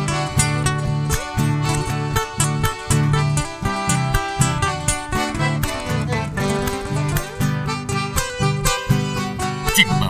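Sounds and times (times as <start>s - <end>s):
accordion: 0.0s - 10.0s
acoustic guitars: 0.0s - 10.0s
violin: 0.0s - 10.0s.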